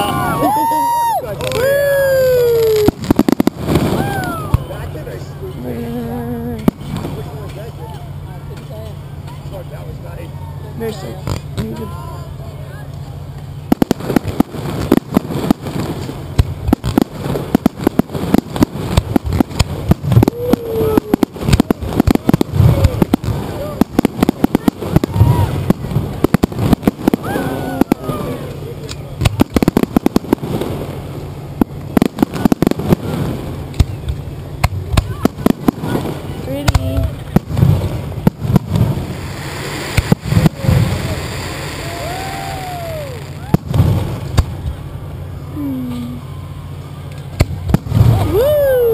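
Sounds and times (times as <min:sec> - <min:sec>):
firework launches and bursts: 0:00.0 - 0:04.8, 0:13.6 - 0:45.2, 0:47.2 - 0:48.9
firework crackle: 0:00.0 - 0:10.2, 0:10.8 - 0:48.9.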